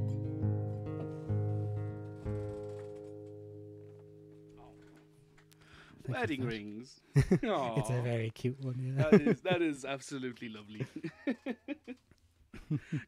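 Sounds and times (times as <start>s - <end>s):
acoustic guitar plucking: 0.0s - 6.5s.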